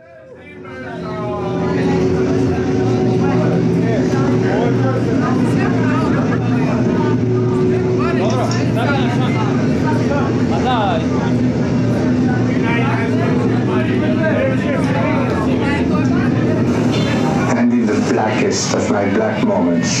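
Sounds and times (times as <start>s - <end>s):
electronic drone of low tones: 0.0s - 20.0s.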